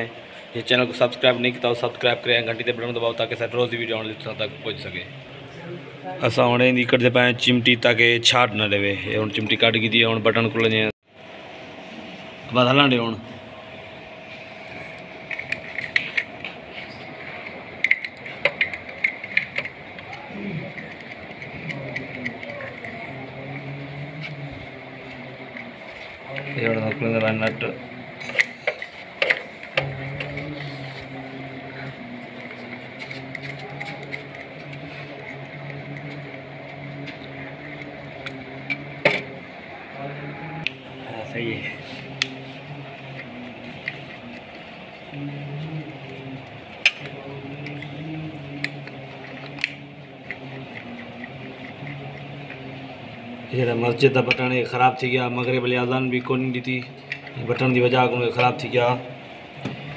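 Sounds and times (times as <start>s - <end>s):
low hum: 0.0s - 59.9s.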